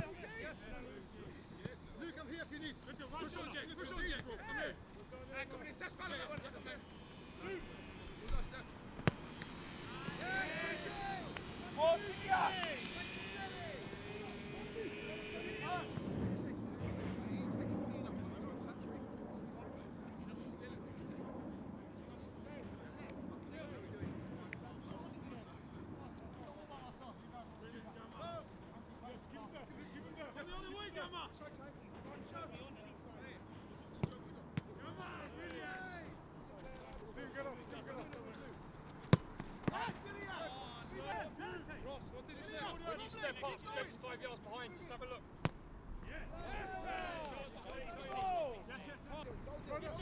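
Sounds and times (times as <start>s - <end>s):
people talking quietly: 0.0s - 50.0s
distant mechanical drone: 6.8s - 16.5s.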